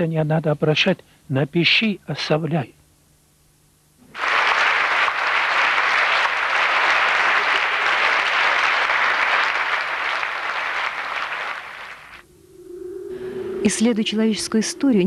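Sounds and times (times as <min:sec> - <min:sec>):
large audience applauding: 0:04.0 - 0:12.2.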